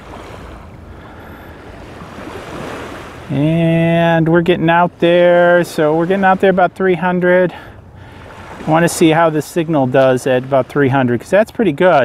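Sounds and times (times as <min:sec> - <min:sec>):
small waves washing on beach: 0:00.0 - 0:12.0.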